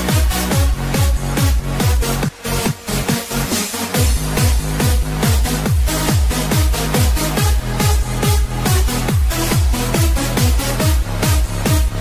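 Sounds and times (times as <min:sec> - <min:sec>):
bass line: 0:00.0 - 0:12.0
techno kick drum: 0:00.0 - 0:12.0.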